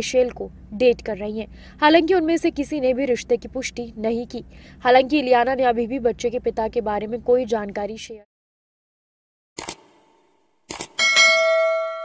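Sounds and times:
notification bell ding: 11.0 - 12.0.

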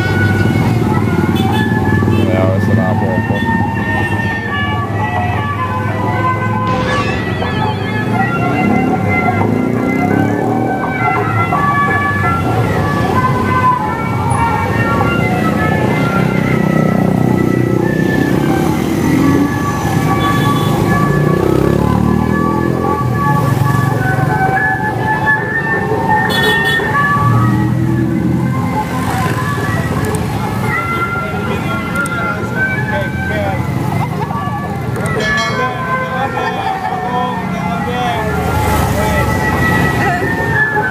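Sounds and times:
cars and motorcycles passing: 0.0 - 40.9
people's voices: 2.2 - 3.6, 29.9 - 40.9
music: 2.7 - 40.9
music from a loudspeaker: 29.4 - 40.9.

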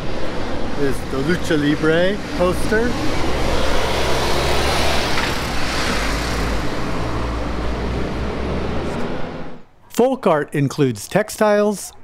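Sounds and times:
city street traffic rumble: 0.0 - 9.8.

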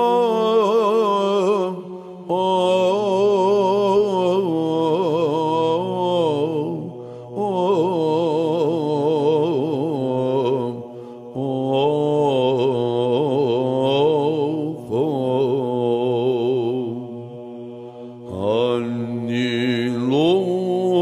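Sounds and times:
low held vocal drone: 0.0 - 21.0.

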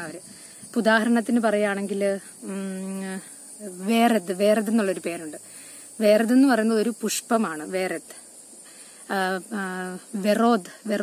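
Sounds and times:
woman talking: 0.0 - 8.2, 9.0 - 11.0
insects chirring: 0.0 - 11.0.

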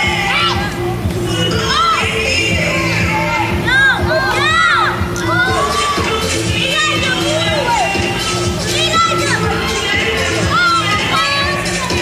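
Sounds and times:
children shouting: 1.6 - 12.0.

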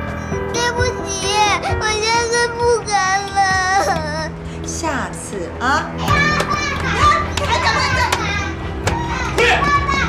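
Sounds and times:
drama music: 0.1 - 10.0
girl crying and shouting: 0.5 - 4.6, 6.0 - 10.0.

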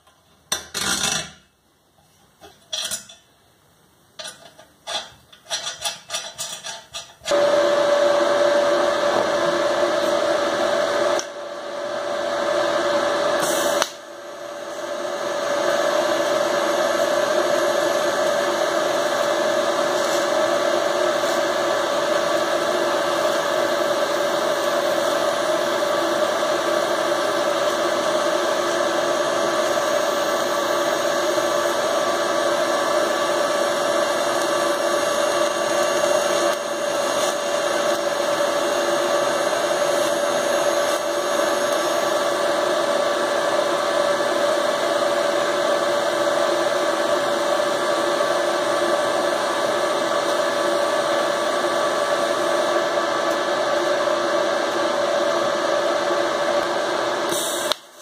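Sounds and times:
arc welding buzzing hiss: 4.4 - 58.0.

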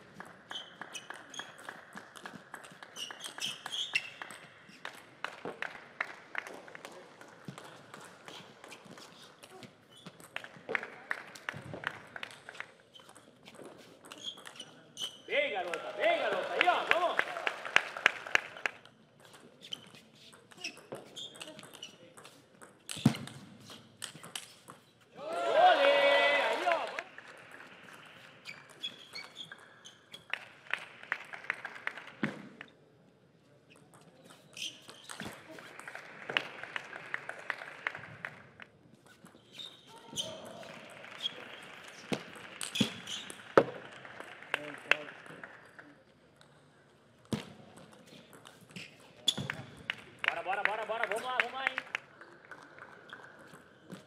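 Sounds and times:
player shouting: 15.3 - 17.2, 25.2 - 27.0.

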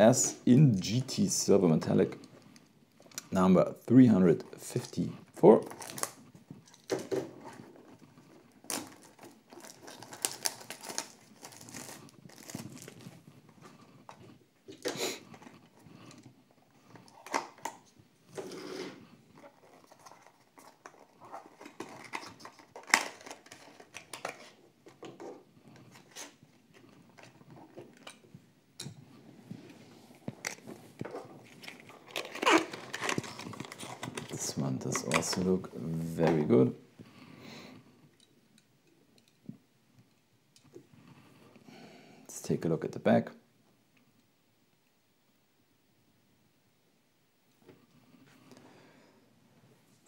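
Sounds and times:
plastic shrink-wrap tearing: 5.6 - 6.2, 8.6 - 13.1, 31.6 - 34.4.

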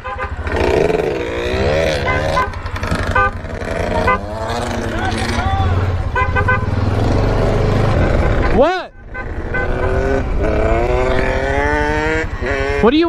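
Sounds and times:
vehicle horn beeps: 0.0 - 0.6, 1.2 - 5.4, 6.1 - 6.9, 8.2 - 10.2
quad bike engine running: 0.1 - 13.0.

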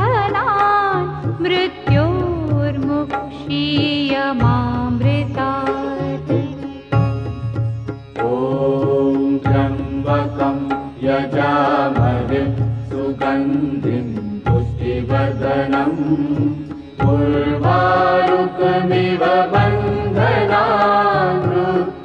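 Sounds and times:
instrumental accompaniment: 0.0 - 22.0.

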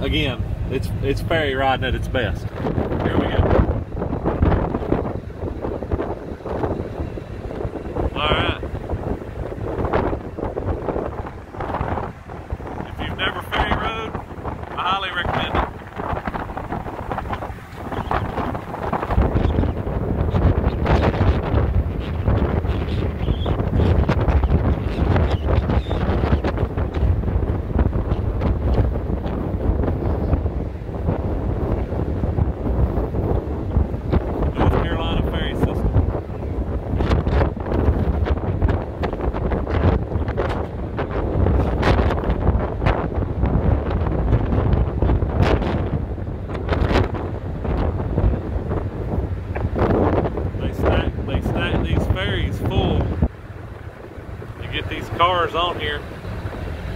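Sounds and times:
gusty wind buffeting microphone: 0.0 - 56.9.

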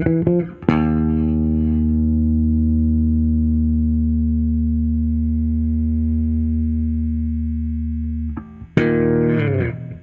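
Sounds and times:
electric bass long note: 0.7 - 10.0.

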